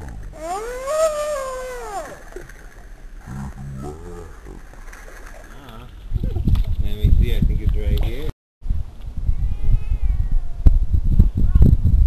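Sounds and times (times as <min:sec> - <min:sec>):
low rumbling on microphone: 0:05.5 - 0:12.0.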